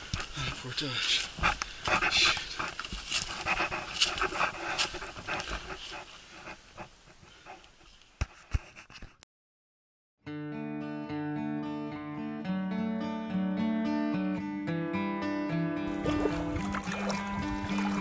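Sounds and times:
music: 0:10.2 - 0:18.0.

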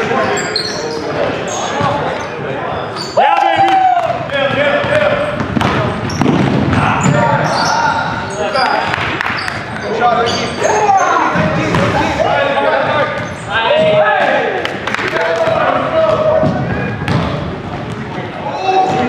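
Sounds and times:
sneakers squeaking: 0:00.0 - 0:14.3
players calling out: 0:00.0 - 0:19.0
basketball bouncing: 0:04.4 - 0:07.5, 0:15.4 - 0:18.2.

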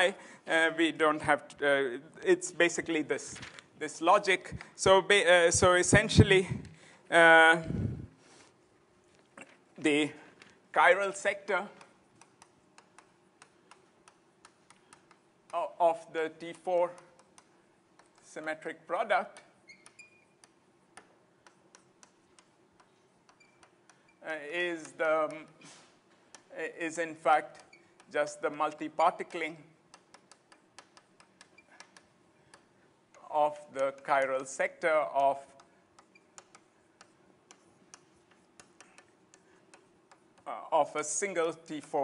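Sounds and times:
faint irregular clicks: 0:11.6 - 0:15.6, 0:16.4 - 0:18.4, 0:19.3 - 0:24.2, 0:24.8 - 0:26.6, 0:27.5 - 0:40.6.

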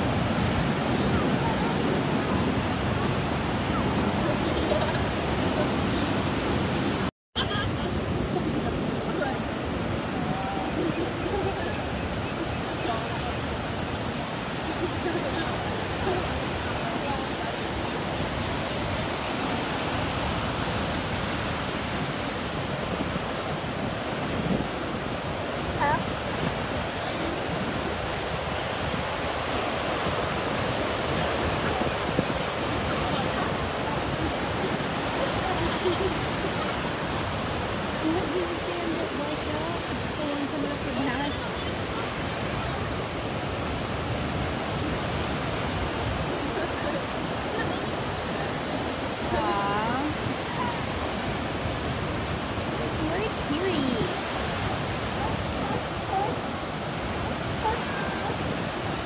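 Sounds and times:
ocean surf breaking: 0:00.0 - 0:59.0.

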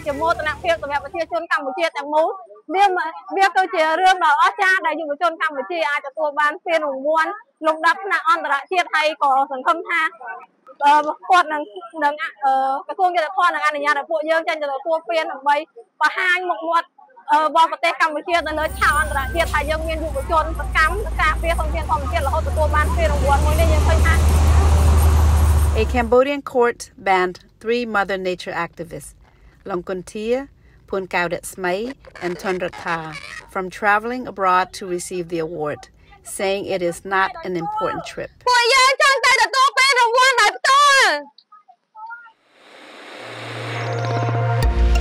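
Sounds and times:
road traffic rumble: 0:00.0 - 0:01.3, 0:18.4 - 0:26.5, 0:30.5 - 0:38.4
vehicle passing close by: 0:19.7 - 0:26.1
person speaking: 0:31.0 - 0:38.3
rising whoosh: 0:42.4 - 0:45.0.

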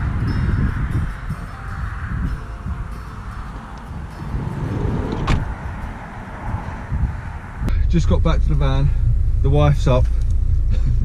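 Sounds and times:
low wind rumble: 0:00.0 - 0:11.0
sliding van door shutting: 0:04.3 - 0:05.5.

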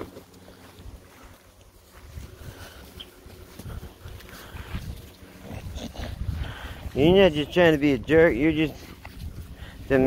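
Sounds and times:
dogs breathing and moving: 0:00.0 - 0:10.0.

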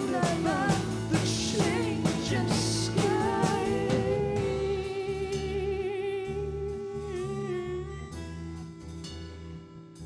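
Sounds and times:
soft drums: 0:00.0 - 0:06.5
bass guitar: 0:00.0 - 0:10.0.

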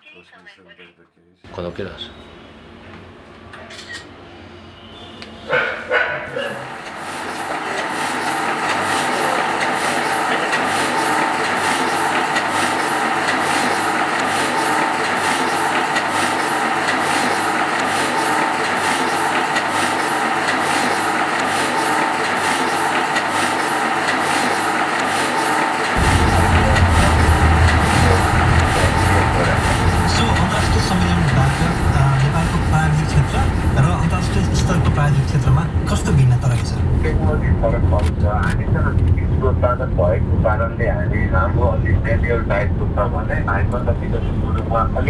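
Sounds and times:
deep low rumble: 0:26.0 - 0:43.2.

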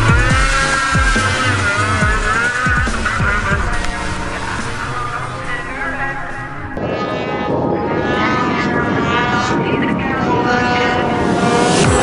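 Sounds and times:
snowmobile engine revving high: 0:00.0 - 0:12.0.

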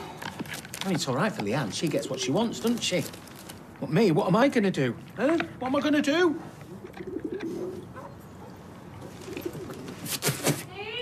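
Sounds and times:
faint outdoor background: 0:00.0 - 0:11.0
pigeon cooing: 0:01.9 - 0:02.7, 0:06.7 - 0:08.1, 0:09.0 - 0:10.2.

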